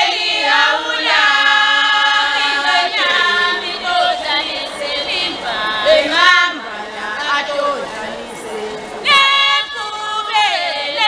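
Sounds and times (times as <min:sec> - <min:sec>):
group singing without instruments: 0:00.0 - 0:11.0.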